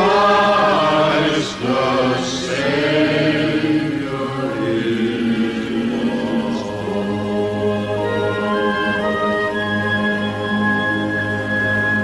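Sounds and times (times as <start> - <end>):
voices singing held notes: 0.0 - 11.5
backing music: 0.0 - 12.0.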